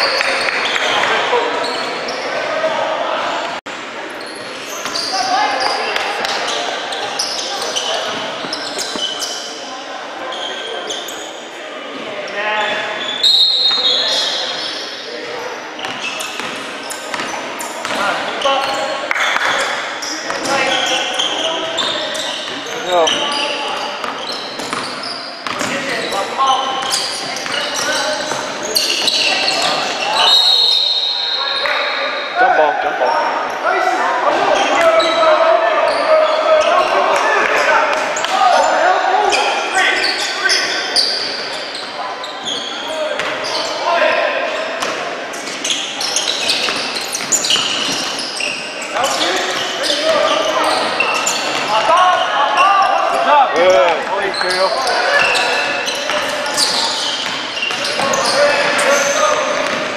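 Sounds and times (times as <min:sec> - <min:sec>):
sneakers squeaking: 0:00.0 - 0:11.6, 0:12.2 - 0:32.4, 0:33.0 - 0:59.9
voices: 0:00.0 - 0:59.9
referee's whistle: 0:13.0 - 0:14.8, 0:28.7 - 0:32.4.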